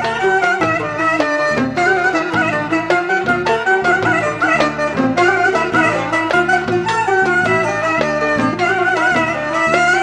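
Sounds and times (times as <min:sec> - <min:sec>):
clarinet playing wavering melody: 0:00.0 - 0:10.0
rhythmic accompaniment: 0:00.0 - 0:10.0.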